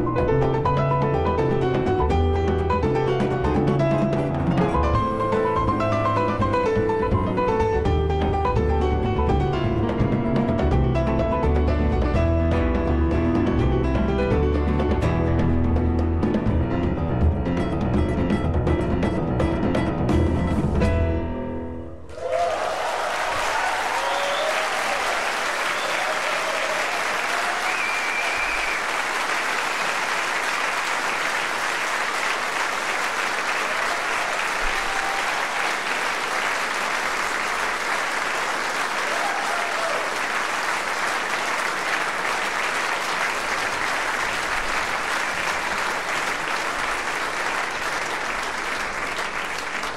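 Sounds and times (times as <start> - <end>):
audience applause: 22.1 - 49.9
crowd cheering: 22.1 - 49.9.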